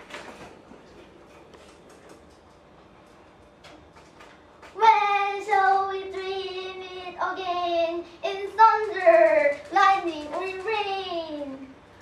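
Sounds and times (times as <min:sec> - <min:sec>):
girl chanting in sing-song: 0:04.8 - 0:11.8.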